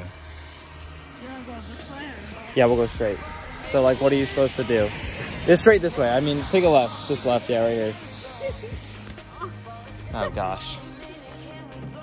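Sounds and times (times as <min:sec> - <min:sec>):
steady low rumble: 0:00.0 - 0:11.3
rain hissing: 0:00.0 - 0:11.5.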